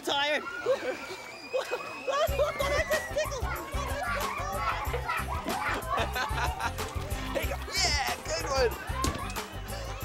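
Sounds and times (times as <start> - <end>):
young children shouting and chattering: 0.0 - 10.0
background music with bass line: 2.3 - 10.0.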